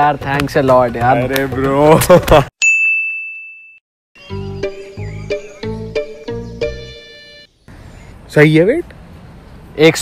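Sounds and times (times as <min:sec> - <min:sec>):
background music with steady beat: 0:00.0 - 0:02.2
bright bell ding: 0:02.6 - 0:03.8.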